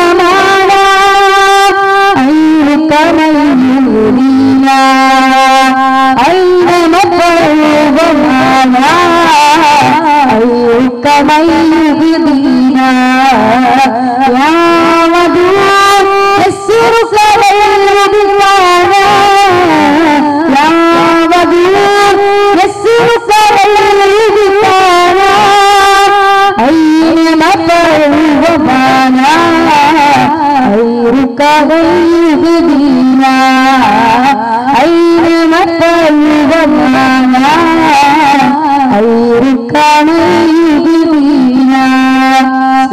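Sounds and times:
boy singing into microphone: 0.0s - 42.9s.

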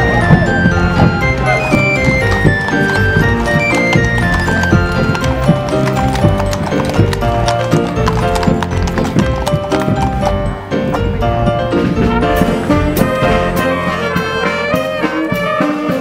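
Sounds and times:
horse hooves on paved road: 0.0s - 16.0s
music playing: 0.0s - 16.0s.

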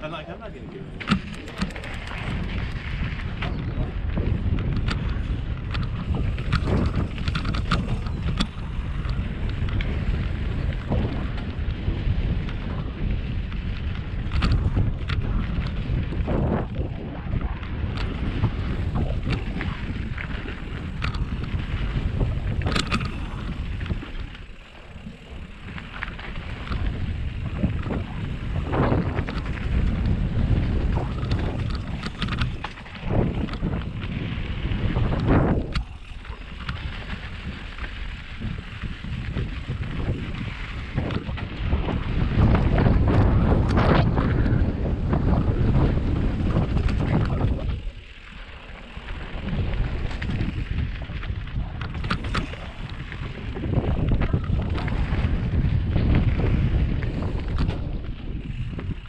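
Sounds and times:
bike clicks and rattles: 0.0s - 59.0s
bike tyres rumbling on dirt: 0.0s - 59.0s
wind buffeting microphone: 0.0s - 59.0s.

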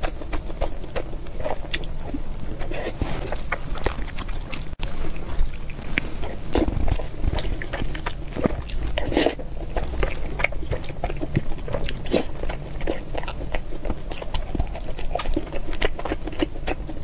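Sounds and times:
person chewing food: 0.0s - 17.0s.

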